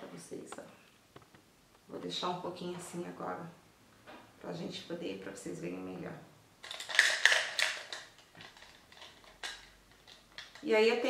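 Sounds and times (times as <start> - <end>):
makeup items clicking and rattling: 6.6 - 10.7.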